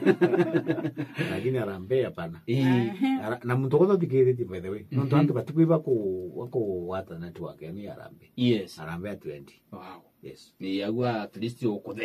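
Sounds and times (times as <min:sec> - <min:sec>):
man speaking in a low voice: 0:01.2 - 0:12.0.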